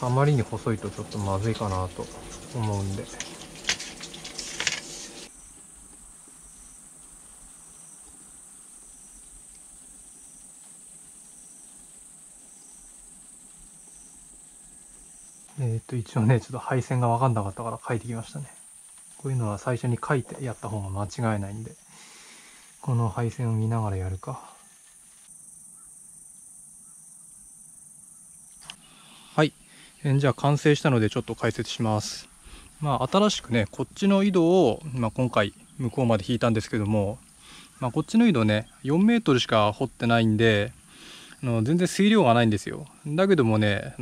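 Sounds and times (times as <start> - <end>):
insects chirring: 0.0 - 44.0
clicks and rustles of handling tools: 0.8 - 5.3.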